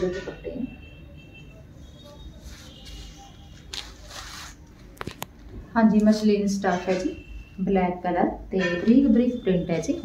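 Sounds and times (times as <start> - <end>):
cloth rustling: 2.4 - 5.4
woman speaking: 5.7 - 10.0.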